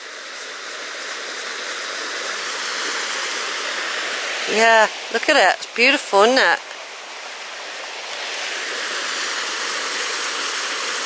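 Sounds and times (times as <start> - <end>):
stream rushing over rocks: 0.0 - 11.0.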